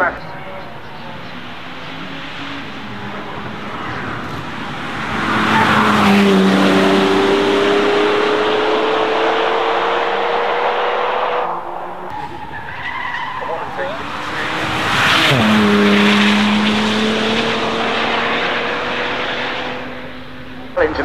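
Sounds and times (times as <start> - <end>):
car engine passing by: 0.4 - 20.8.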